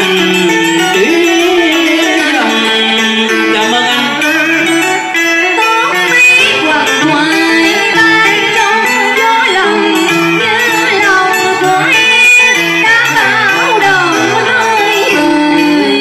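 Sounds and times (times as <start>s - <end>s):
man singing into microphone: 0.0s - 5.0s
plucked-string accompaniment: 0.0s - 16.0s
woman singing into microphone: 0.0s - 16.0s.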